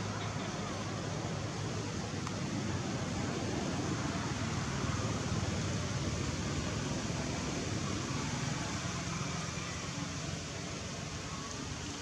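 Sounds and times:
outdoor background rush: 0.0s - 12.0s.

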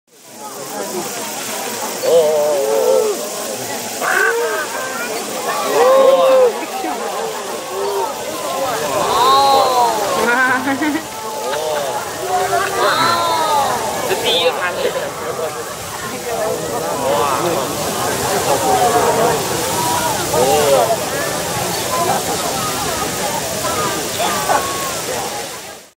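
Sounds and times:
geyser water jetting hiss: 0.1s - 25.9s
onlookers' voices: 0.1s - 26.0s.

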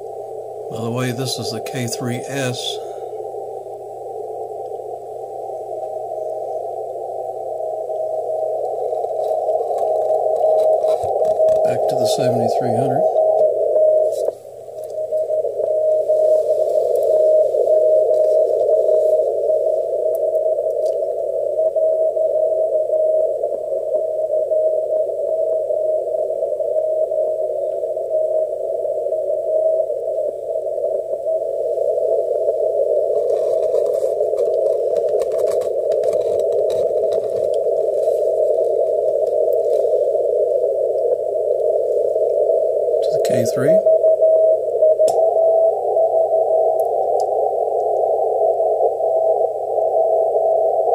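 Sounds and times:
radio hiss: 0.0s - 50.9s
faint morse code tone: 7.8s - 23.3s.

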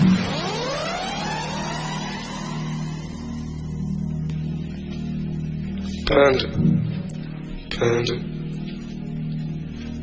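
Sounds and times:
car engine revving: 0.0s - 3.7s.

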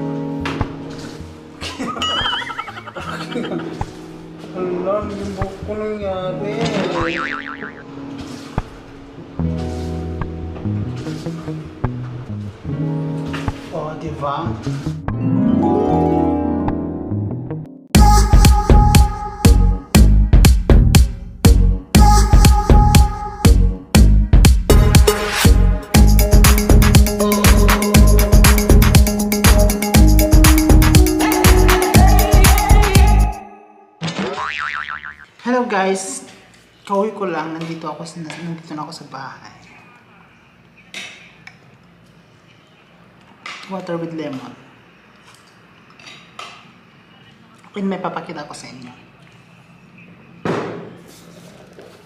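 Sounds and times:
soft background music: 0.0s - 20.3s
cartoon boing sound effect: 7.0s - 7.9s, 34.0s - 35.3s
dance music with heavy beat: 24.5s - 33.2s.

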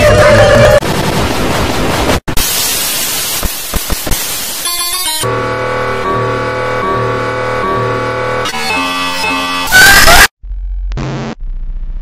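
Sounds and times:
stuttering low rumbling noise: 10.4s - 12.0s.

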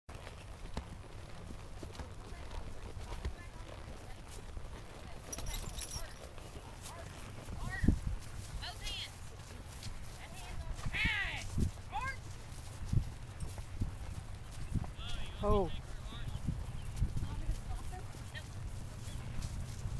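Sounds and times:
hooves clip-clopping on dirt: 0.1s - 19.9s
voices calling out: 8.6s - 19.7s.

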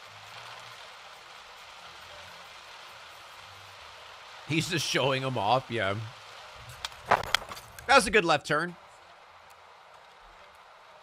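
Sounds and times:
heavy rain on car roof: 0.0s - 11.0s.

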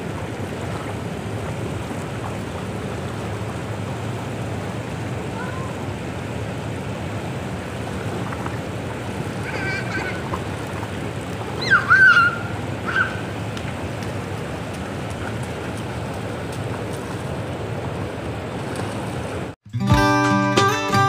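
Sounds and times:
fountain jets rushing: 0.0s - 19.6s
child squealing: 5.4s - 5.8s, 9.4s - 10.3s, 11.6s - 13.3s
children splashing in water: 7.3s - 19.6s
guitar music: 19.6s - 21.0s.

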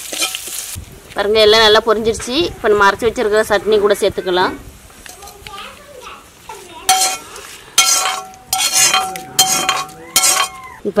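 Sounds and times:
metal spoon scraping iron pan: 0.0s - 0.6s, 6.9s - 10.7s
metal ringing: 6.9s - 10.8s.

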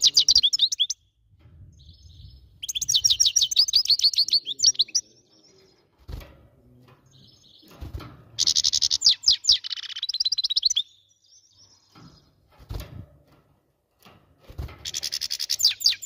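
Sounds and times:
bird twittering trills: 0.0s - 1.1s, 1.7s - 5.8s, 8.4s - 12.4s, 14.8s - 16.0s.

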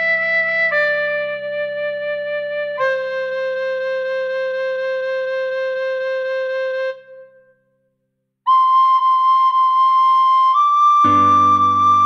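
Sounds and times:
recorder playing melody: 8.5s - 12.0s.

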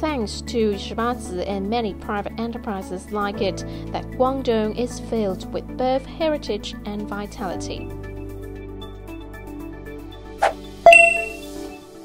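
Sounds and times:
background music: 0.0s - 12.0s
bright ding: 10.4s - 11.6s.

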